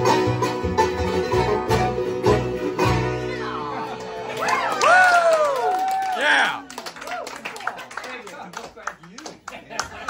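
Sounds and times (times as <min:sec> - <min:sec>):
people clapping: 0:03.9 - 0:10.0.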